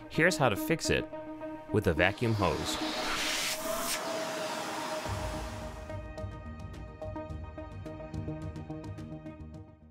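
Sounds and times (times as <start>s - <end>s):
vacuum cleaner suction: 1.9s - 6.0s.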